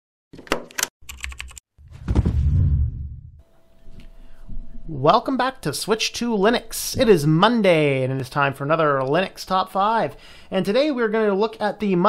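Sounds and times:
loud low boom: 1.9 - 3.4.

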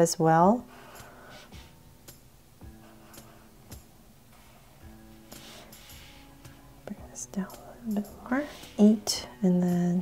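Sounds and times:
marker stroking on paper: 0.8 - 1.8, 2.7 - 3.6, 4.3 - 9.1
woman's soft wordless voice: 6.9 - 10.0.

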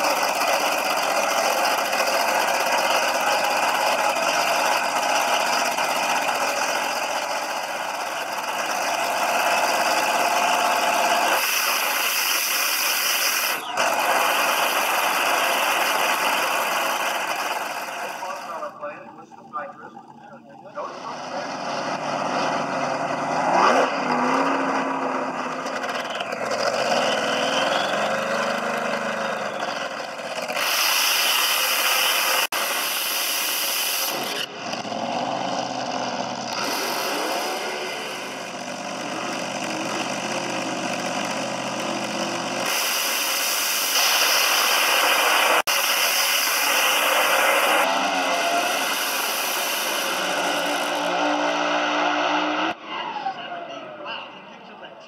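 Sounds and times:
dragster engine revving: 0.0 - 54.0.

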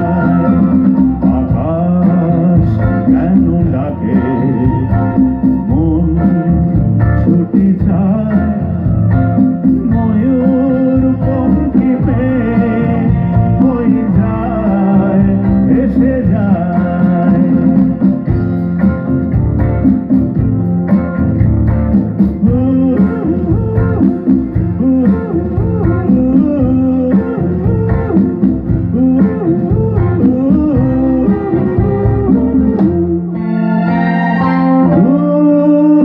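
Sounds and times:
man singing into a microphone: 0.0 - 18.2, 22.4 - 33.7, 34.8 - 36.0
electric guitar: 0.0 - 36.0
full band playing: 0.0 - 36.0.

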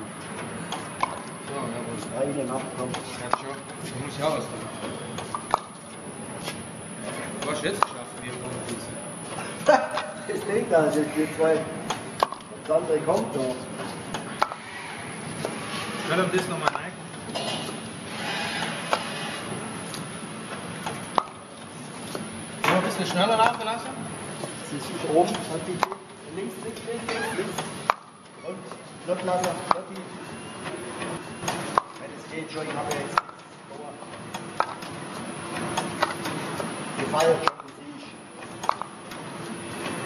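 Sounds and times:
machine running steadily: 0.0 - 40.0
sharp clicks and knocks: 38.4 - 39.2.

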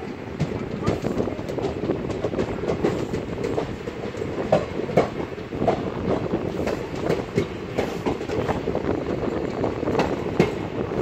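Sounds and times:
wheels clanking over track: 0.0 - 10.8
train running rumble: 0.0 - 11.0.

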